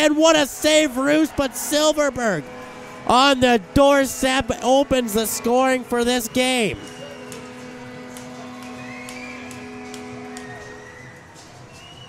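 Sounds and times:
arena goal horn: 0.9s - 11.2s.

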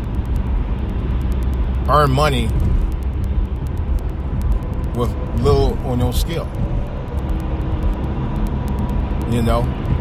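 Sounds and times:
vehicle road noise rumble: 0.0s - 10.0s.

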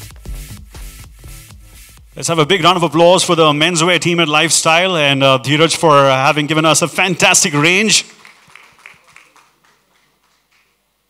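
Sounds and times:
faint hand claps: 8.1s - 10.9s.

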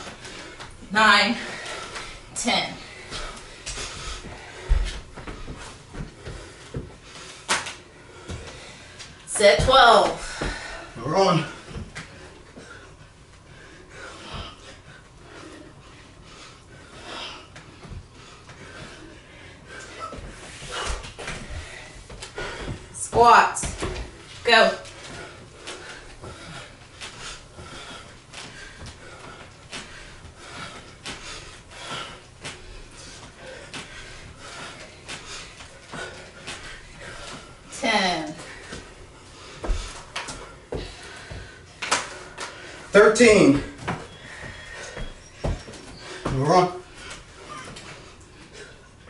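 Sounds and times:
hard breathing: 0.0s - 9.3s, 9.9s - 49.0s
knocks and shuffles on wooden floor: 20.0s - 27.9s, 42.9s - 48.1s.

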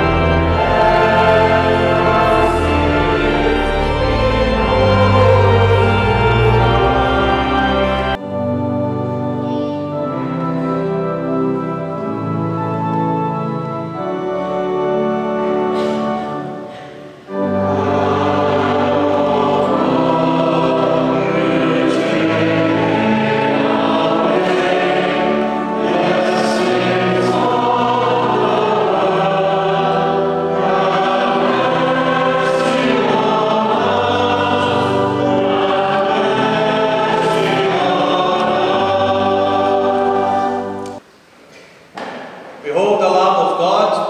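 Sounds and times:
choir singing held notes: 0.0s - 41.1s.

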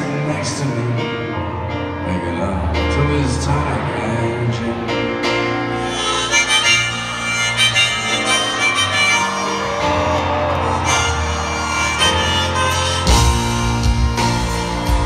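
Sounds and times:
bass: 0.0s - 15.0s
piano: 0.0s - 15.0s
harmonica playing melody: 4.7s - 15.0s.

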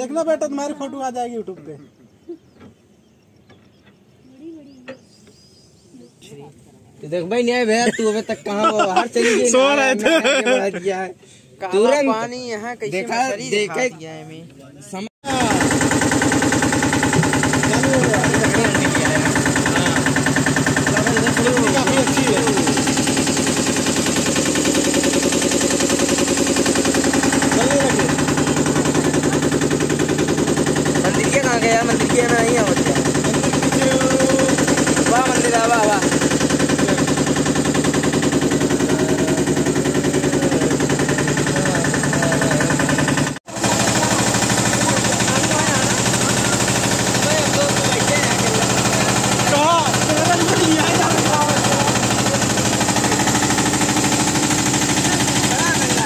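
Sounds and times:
motorboat engine chugging: 15.2s - 56.0s.

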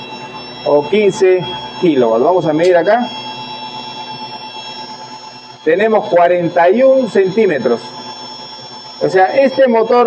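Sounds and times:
air compressor whining: 0.0s - 10.0s
low motor hum: 0.0s - 10.0s.

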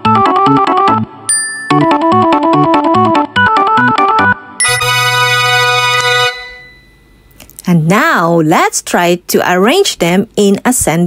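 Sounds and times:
bouncy electronic keyboard tune: 0.0s - 7.3s
woman speaking: 7.6s - 11.0s.

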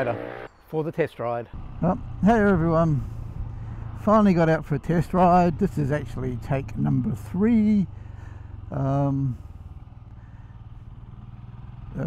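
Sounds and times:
motorcycle engine cruising: 0.0s - 0.5s, 1.6s - 12.0s.

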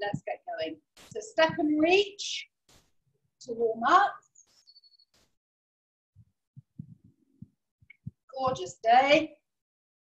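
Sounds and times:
footsteps on rubber floor: 0.9s - 2.0s, 2.6s - 3.0s, 4.3s - 5.4s.

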